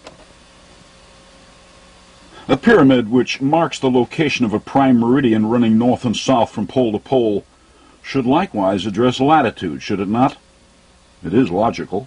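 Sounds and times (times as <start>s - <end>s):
faint hiss with low hum: 0.0s - 12.0s.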